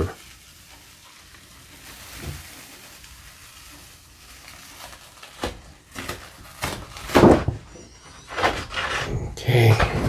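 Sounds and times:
paper peeling sticky crackle: 0:00.0 - 0:07.4.

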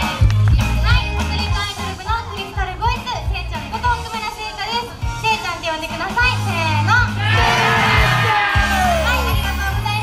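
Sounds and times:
woman talking through a microphone: 0:00.0 - 0:07.3, 0:08.7 - 0:10.0.

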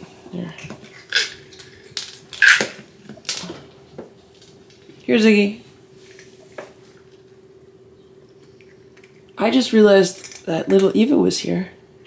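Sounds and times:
faint steady hum: 0:00.0 - 0:12.0
cats crunching dry treats: 0:08.4 - 0:09.4.

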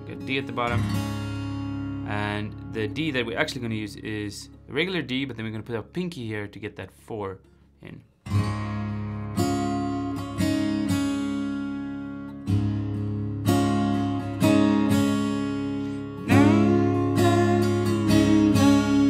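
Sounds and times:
fingerpicked acoustic guitar: 0:00.0 - 0:05.9, 0:07.4 - 0:19.0.

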